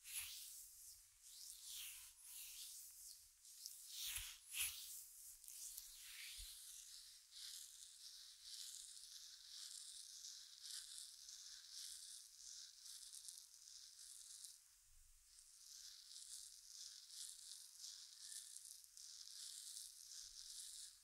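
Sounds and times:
fingertips rubbing hair and skin: 0:00.1 - 0:14.5, 0:15.7 - 0:21.0.

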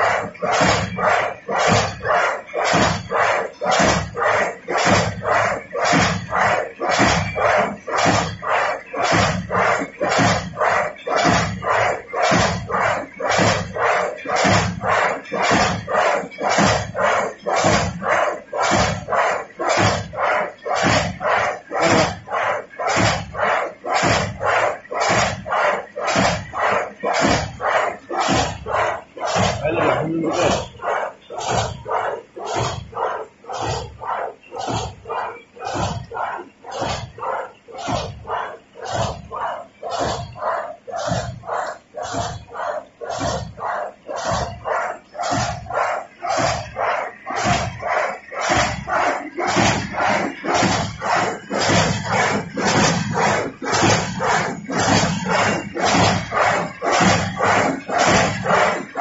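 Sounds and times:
machine beating regular strokes: 0:00.0 - 0:59.0.

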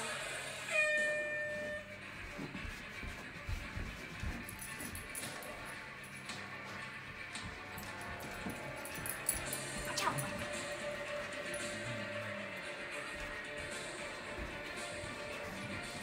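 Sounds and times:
background music: 0:00.0 - 0:16.0
timer buzzer tone: 0:00.7 - 0:02.0.

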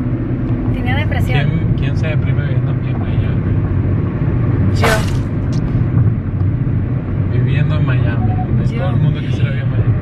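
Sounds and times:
car cabin road rumble: 0:00.0 - 0:10.0.

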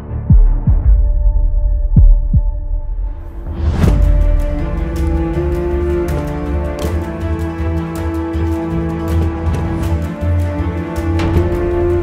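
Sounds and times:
heartbeat thumps: 0:00.3 - 0:02.9.

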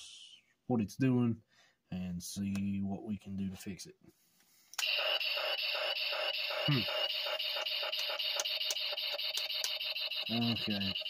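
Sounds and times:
toy speaker buzzy pulsing tone: 0:04.8 - 0:11.0.

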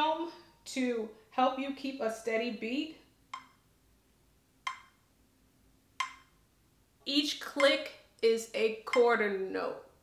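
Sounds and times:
metronome clicks: 0:03.3 - 0:03.6, 0:04.6 - 0:05.0, 0:06.0 - 0:06.4, 0:07.6 - 0:07.9, 0:08.9 - 0:09.2.

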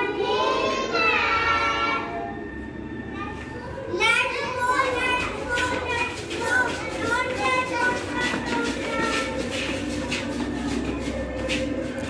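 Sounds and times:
children singing together: 0:00.0 - 0:02.4.

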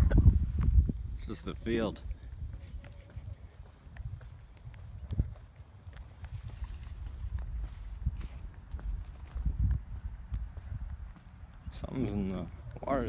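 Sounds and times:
footsteps on asphalt: 0:00.4 - 0:13.0.

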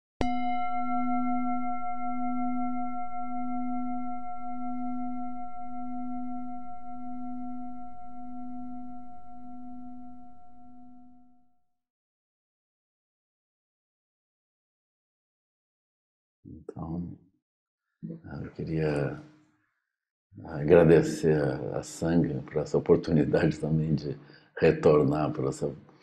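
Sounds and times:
singing bowl ringing: 0:00.2 - 0:11.4.

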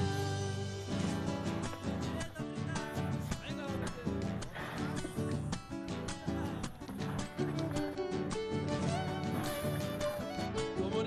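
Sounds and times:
plucked guitar music: 0:00.0 - 0:11.0.

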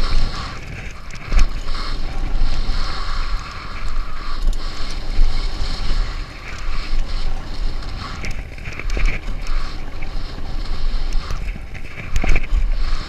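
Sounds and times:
bike tyres rumbling on dirt trail: 0:00.0 - 0:13.0
wind buffeting microphone: 0:00.0 - 0:13.0.

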